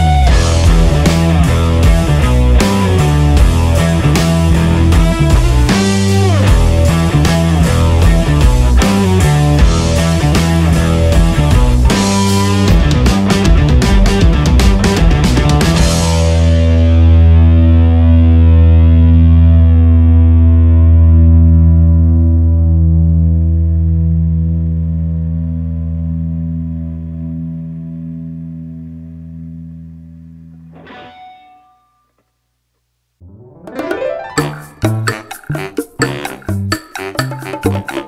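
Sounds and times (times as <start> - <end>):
rock music: 0.0 - 22.1, 33.2 - 38.0
distorted electric guitar chord: 0.0 - 31.4.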